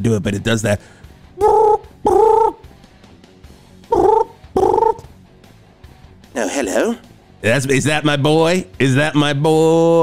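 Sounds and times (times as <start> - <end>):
man imitating phone ring: 1.4 - 2.6, 3.9 - 5.0.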